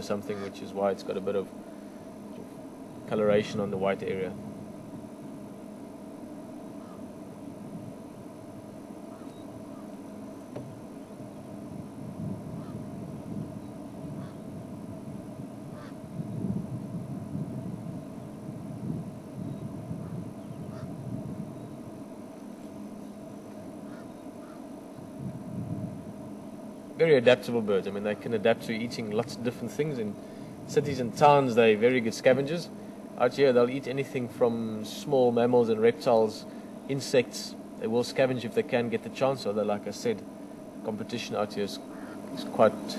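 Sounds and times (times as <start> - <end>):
low rumble with hum: 0.0 - 42.9.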